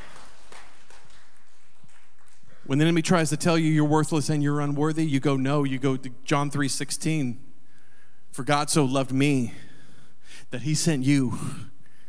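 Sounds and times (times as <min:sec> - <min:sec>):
microphone background hiss: 0:00.0 - 0:12.0.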